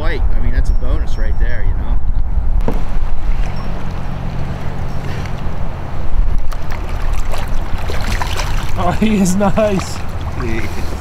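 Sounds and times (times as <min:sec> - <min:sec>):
wind rumbling on microphone: 0:00.0 - 0:11.0
fish splashing at surface: 0:06.4 - 0:11.0.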